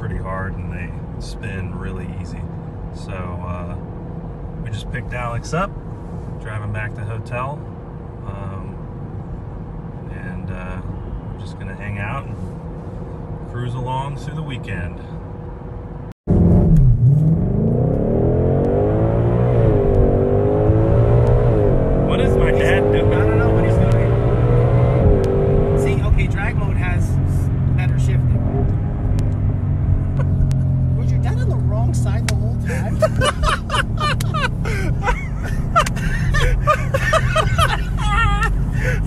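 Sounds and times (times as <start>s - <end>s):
people talking: 0.0s - 2.4s, 3.0s - 3.8s, 4.7s - 5.7s, 8.3s - 8.7s, 10.1s - 12.3s, 22.1s - 24.2s, 25.8s - 27.2s, 27.8s - 28.4s, 30.9s - 39.0s
car engine accelerating: 16.3s - 39.0s.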